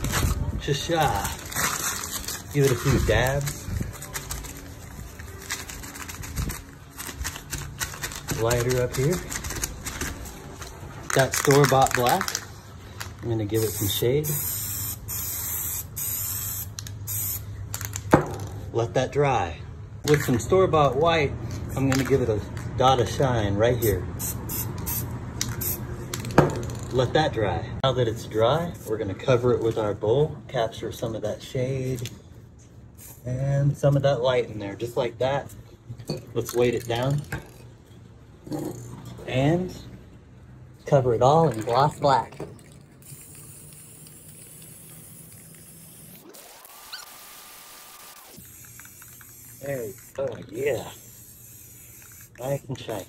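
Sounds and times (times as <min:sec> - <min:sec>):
spray paint can hissing: 0:13.6 - 0:17.9, 0:23.8 - 0:26.9, 0:33.0 - 0:33.3, 0:43.0 - 0:53.0.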